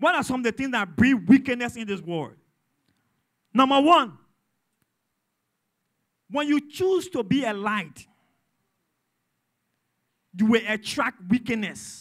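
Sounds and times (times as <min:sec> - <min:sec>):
man speaking: 0:00.0 - 0:02.4, 0:03.5 - 0:04.2, 0:06.3 - 0:08.1, 0:10.4 - 0:12.0.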